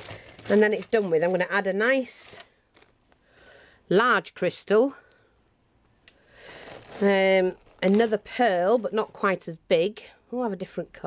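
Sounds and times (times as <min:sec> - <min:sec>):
plastic bags rustling: 0:00.0 - 0:03.4, 0:06.3 - 0:09.6.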